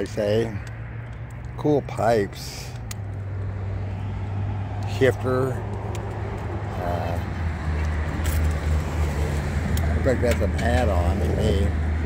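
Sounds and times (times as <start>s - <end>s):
idling vehicle engine hum: 0.0s - 12.0s.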